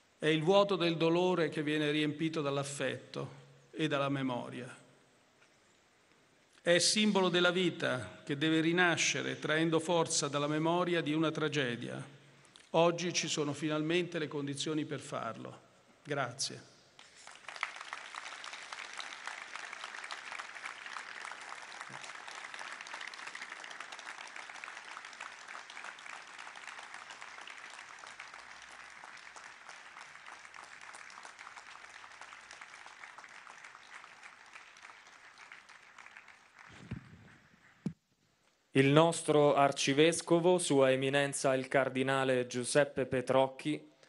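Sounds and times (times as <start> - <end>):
audience applauding: 17.0 - 37.4.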